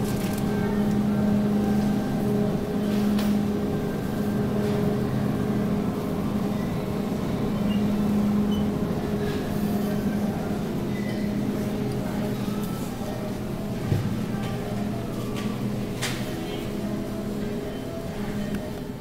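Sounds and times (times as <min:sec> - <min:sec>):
shopping cart rumbling: 0:00.0 - 0:18.9
refrigerated display cases humming: 0:00.0 - 0:19.0.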